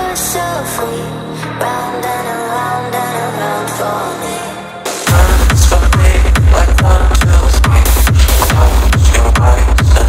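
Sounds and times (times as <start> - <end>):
techno music: 0.0 - 10.0.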